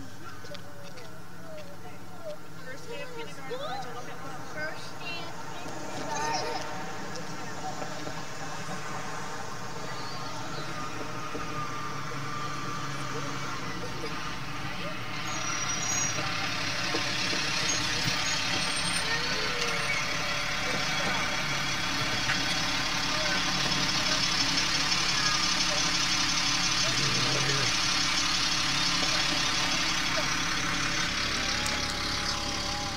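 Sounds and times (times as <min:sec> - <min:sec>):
school bus engine idling: 0:00.0 - 0:32.9.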